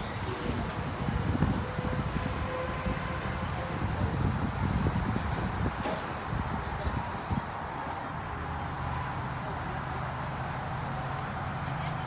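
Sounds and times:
wind buffeting microphone: 0:00.1 - 0:07.8.

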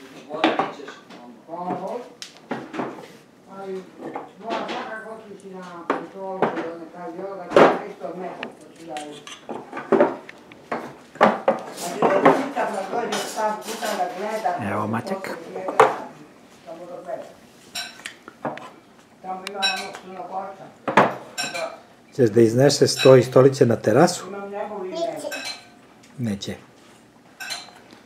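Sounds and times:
wooden furniture pieces knocking: 0:07.5 - 0:07.9, 0:09.5 - 0:13.1, 0:20.8 - 0:21.3.

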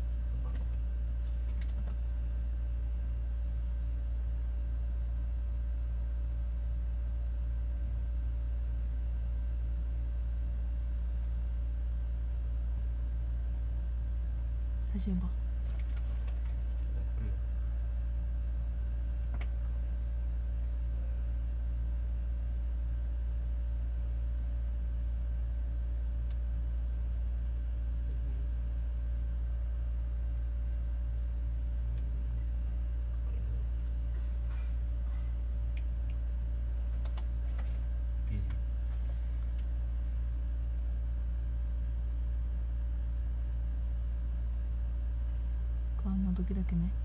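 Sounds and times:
faint steady whine: 0:00.0 - 0:47.0
low mechanical hum: 0:00.0 - 0:47.0.

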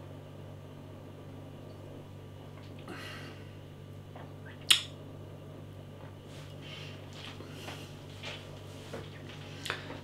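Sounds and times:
lip smack: 0:04.5 - 0:05.0.

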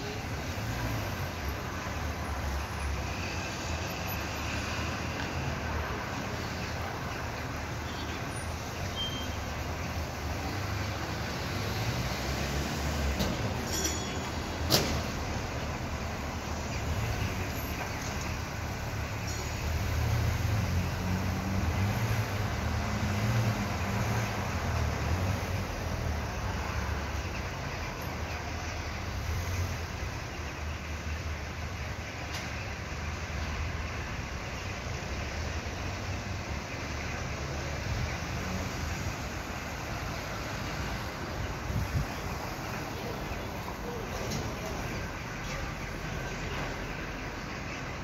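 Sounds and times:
urban background noise: 0:00.0 - 0:48.0
vehicle engine rumble: 0:00.0 - 0:48.0.

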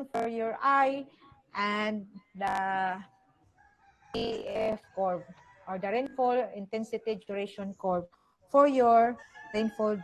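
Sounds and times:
woman speaking: 0:00.0 - 0:03.1, 0:04.2 - 0:10.0.

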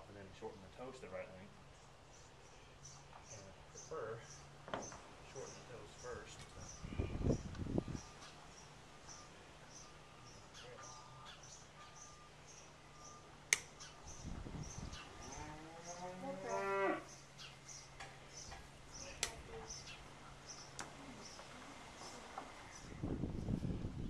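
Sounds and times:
cow mooing: 0:15.3 - 0:17.1.

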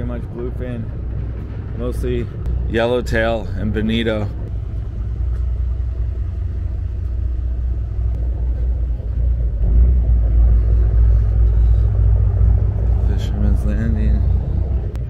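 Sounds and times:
loud low rumble: 0:00.0 - 0:15.0.

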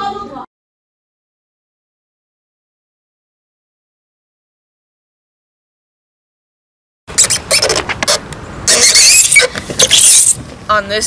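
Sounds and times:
legs squeaking on plastic slide: 0:07.1 - 0:10.4.

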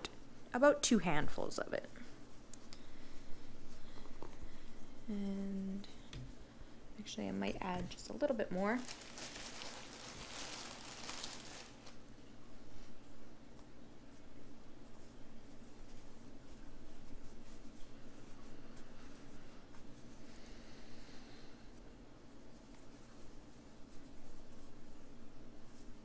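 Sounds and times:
rustling of stuffing being handled: 0:05.9 - 0:13.2, 0:14.0 - 0:20.4, 0:21.8 - 0:26.0.

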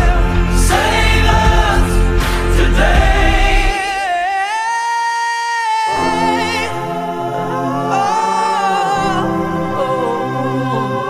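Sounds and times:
choir-like voices: 0:00.0 - 0:11.0.

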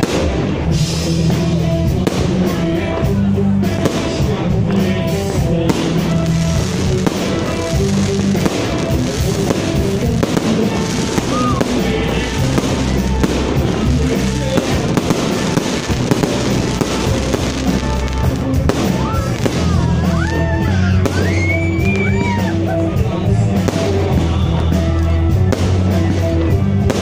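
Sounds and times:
fireworks bangs and crackles: 0:00.0 - 0:27.0
loud music: 0:00.0 - 0:27.0.

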